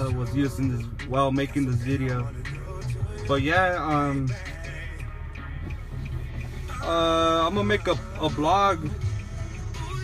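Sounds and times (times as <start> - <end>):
car idling rumble: 0.0 - 10.0.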